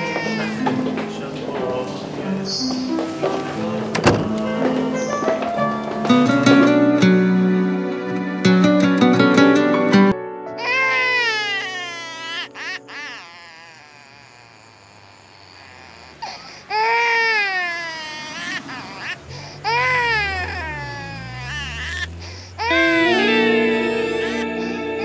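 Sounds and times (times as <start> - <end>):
baby crying: 0.0 - 0.8, 10.6 - 25.0.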